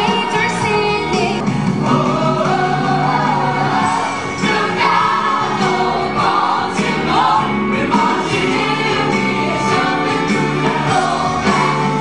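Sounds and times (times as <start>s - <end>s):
live band playing: 0.0s - 12.0s
ensemble singing in chorus: 1.4s - 12.0s.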